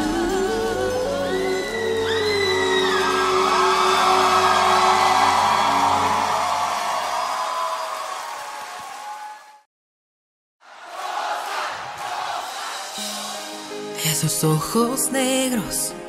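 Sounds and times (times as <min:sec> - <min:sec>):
pop ballad with wailing vocals: 0:00.0 - 0:06.7.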